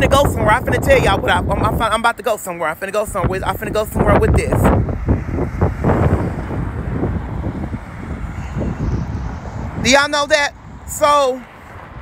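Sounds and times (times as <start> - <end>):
wind buffeting microphone: 0.0 - 12.0
man speaking: 9.8 - 11.4.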